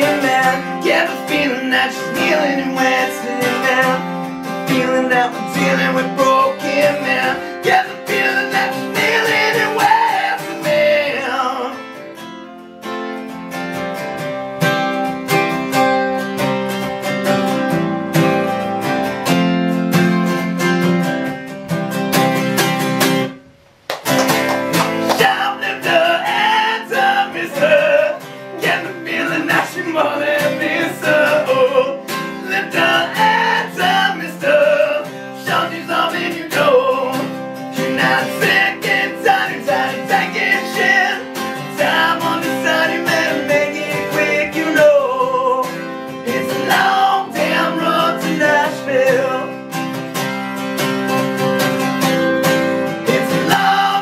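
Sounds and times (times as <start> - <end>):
man singing: 0.0 - 12.0, 25.0 - 49.7, 53.0 - 54.0
acoustic guitar strummed: 0.0 - 54.0.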